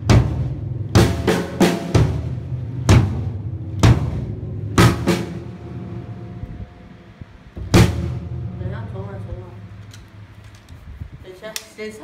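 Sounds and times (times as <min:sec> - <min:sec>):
drum kit hits ringing: 0:00.0 - 0:09.3.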